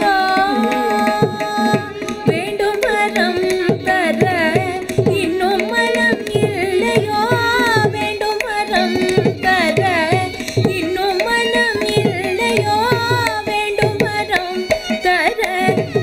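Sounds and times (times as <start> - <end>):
mridangam drum strokes: 0.0 - 16.0
woman singing ornamented notes: 0.0 - 16.0.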